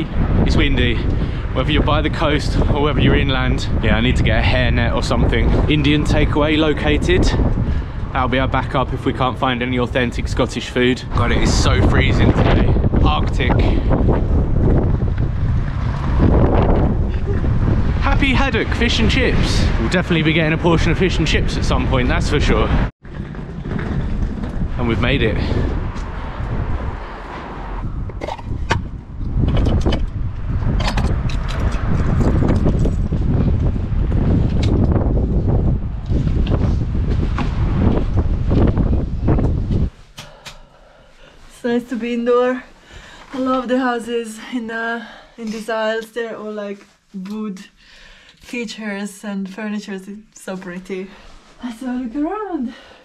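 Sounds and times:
wind buffeting microphone: 0:00.0 - 0:46.6.

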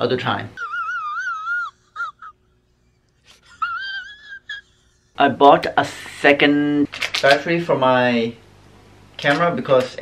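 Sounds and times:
man wailing in falsetto: 0:00.6 - 0:02.5, 0:03.5 - 0:04.8
man sobbing: 0:00.6 - 0:05.2.

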